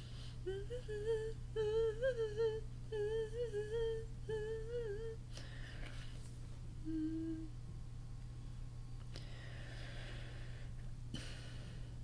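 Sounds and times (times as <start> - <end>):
low background hum: 0.0 - 12.0
woman humming a tune: 0.4 - 5.2, 6.8 - 7.6.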